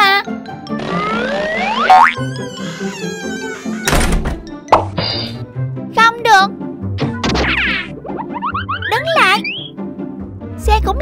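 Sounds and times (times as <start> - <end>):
children's background music: 0.0 - 3.5, 4.4 - 11.0
cartoon boing: 1.6 - 2.2
cartoon thunk: 7.0 - 7.8.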